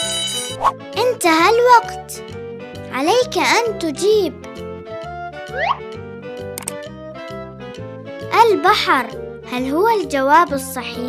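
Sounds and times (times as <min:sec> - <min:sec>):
children's music with bass beat: 0:00.0 - 0:11.0
short click sound effect: 0:06.6 - 0:06.8.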